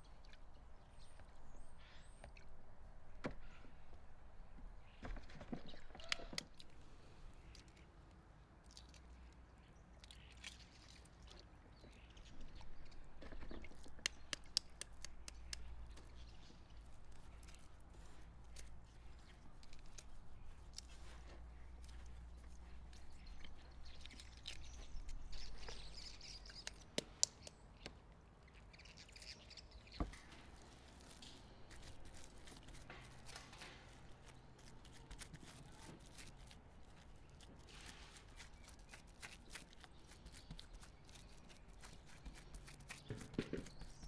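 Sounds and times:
gritty rustling of breadcrumbs: 11.9 - 25.9, 29.8 - 44.0.

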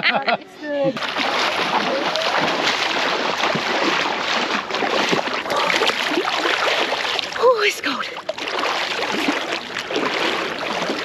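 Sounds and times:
seawater sloshing and splashing: 0.9 - 11.0.

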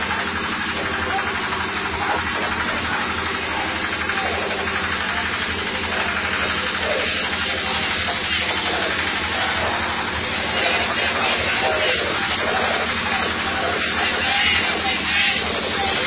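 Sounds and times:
engine running steadily: 0.0 - 16.0
faint voices: 0.0 - 16.0.

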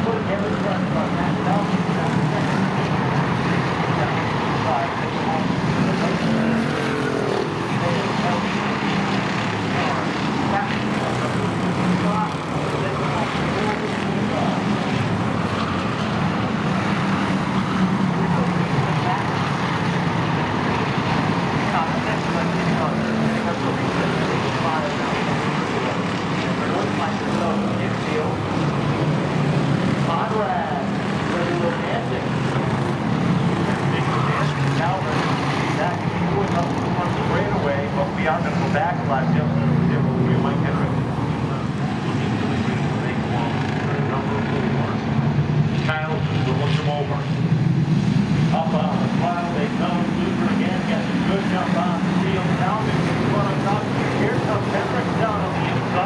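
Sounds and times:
race car engines droning: 0.0 - 56.0.

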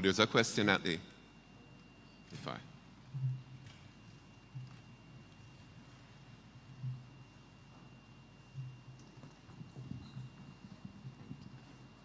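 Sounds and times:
footsteps on a stage: 3.2 - 12.0.

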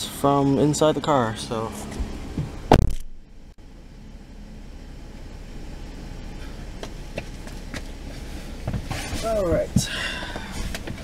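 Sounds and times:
low rumble inside car cabin: 0.0 - 11.0
heavy thump: 2.0 - 3.3, 8.6 - 10.0.

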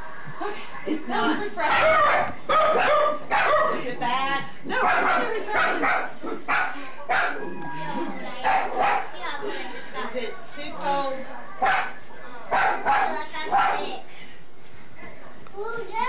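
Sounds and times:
dog barking: 1.6 - 3.9, 4.7 - 7.4, 8.4 - 9.2, 11.5 - 14.0.

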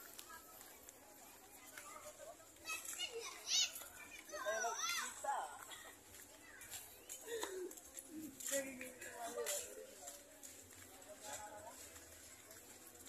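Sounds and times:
general chatter: 0.0 - 13.0.

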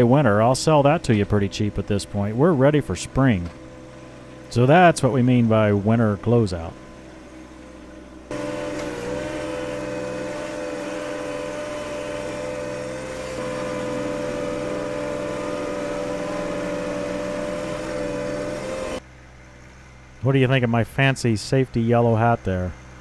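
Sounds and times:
tractor diesel engine under load: 0.0 - 19.0.

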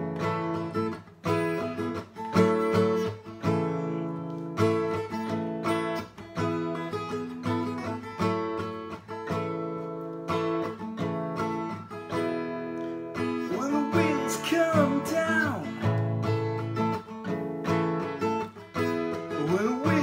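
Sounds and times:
acoustic guitar strumming: 0.0 - 20.0
man singing: 13.3 - 16.1, 19.2 - 20.0.

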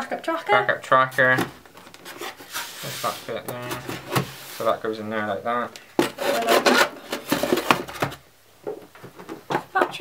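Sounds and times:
circuit board scraping foam box: 2.0 - 4.8, 6.0 - 8.2.

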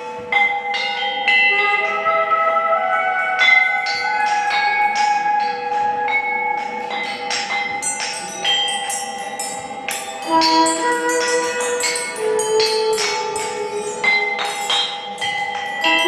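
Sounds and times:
bronze bells ringing: 0.0 - 16.0
long held tone: 9.4 - 16.0.

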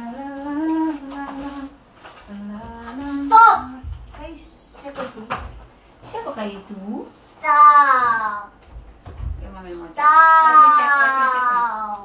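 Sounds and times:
woman humming: 0.0 - 4.0.

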